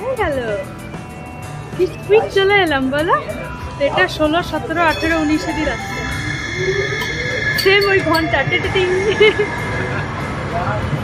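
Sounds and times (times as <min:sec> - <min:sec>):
tram rumbling along rails: 0:02.6 - 0:11.0.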